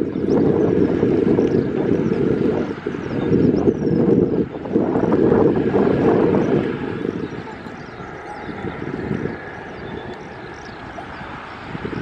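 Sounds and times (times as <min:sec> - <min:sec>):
distant jet engines rumbling: 0:00.0 - 0:12.0
wind buffeting microphone: 0:00.0 - 0:12.0.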